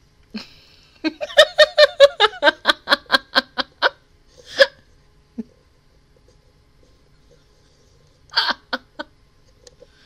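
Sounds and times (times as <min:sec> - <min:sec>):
woman laughing hard: 0:00.4 - 0:05.5, 0:08.3 - 0:09.2.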